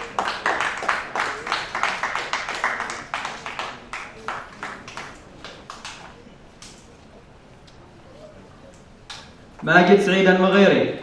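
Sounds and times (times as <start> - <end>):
audience clapping: 0.0 - 6.8.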